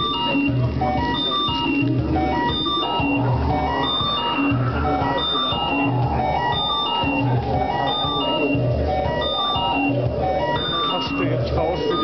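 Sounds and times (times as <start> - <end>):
high synth notes: 0.0 - 12.0
synth bass notes: 0.0 - 12.0.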